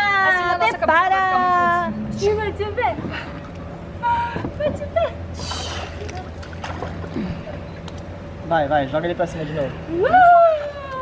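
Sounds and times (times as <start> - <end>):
pool water splashing: 5.2 - 8.0.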